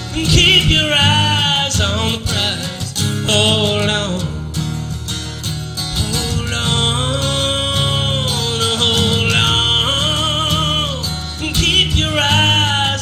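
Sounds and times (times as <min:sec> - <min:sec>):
man singing: 0:00.0 - 0:04.6, 0:05.8 - 0:13.0
acoustic guitar strumming: 0:00.0 - 0:13.0.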